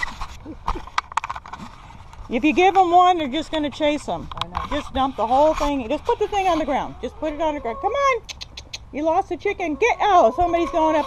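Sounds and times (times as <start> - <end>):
faint rubbing: 1.6 - 7.9.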